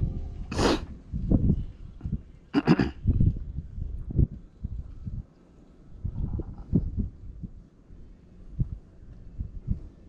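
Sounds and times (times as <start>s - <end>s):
muffled thumps and rumble: 6.0s - 7.6s.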